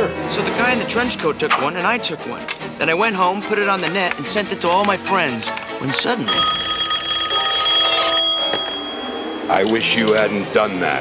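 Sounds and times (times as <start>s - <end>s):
telephone ringing: 5.9s - 10.3s.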